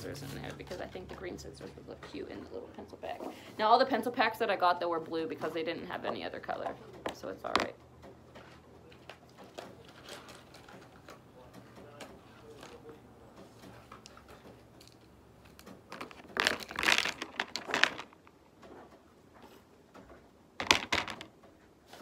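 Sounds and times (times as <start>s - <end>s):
plastic packaging crinkling: 15.9s - 18.3s.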